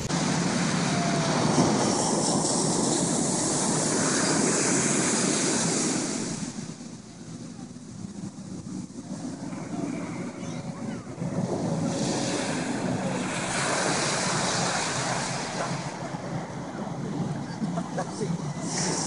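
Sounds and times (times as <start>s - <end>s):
ocean surf washing onto beach: 0.0s - 19.0s
wind buffeting microphone: 0.0s - 19.0s.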